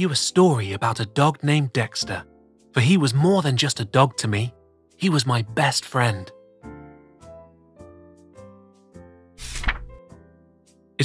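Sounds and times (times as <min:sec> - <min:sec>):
gentle background music: 0:00.0 - 0:11.0
page turning rustle: 0:09.4 - 0:10.0.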